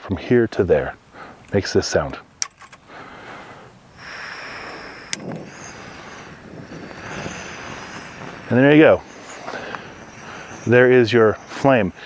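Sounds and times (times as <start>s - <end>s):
gas hissing from burner: 3.0s - 12.0s
piezo igniter clicking: 4.8s - 6.0s.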